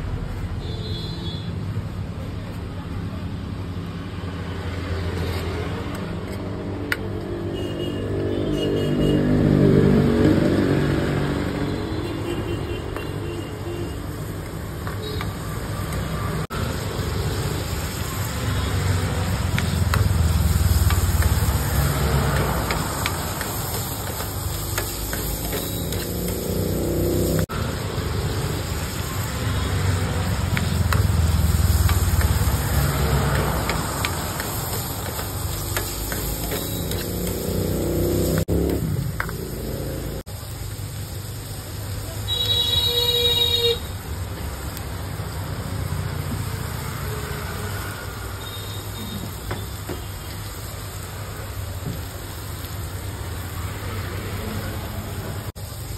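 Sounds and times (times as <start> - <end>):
food sizzling in oil: 3.3 - 55.9
metal ladle scraping pan: 20.9 - 27.4, 30.6 - 38.4.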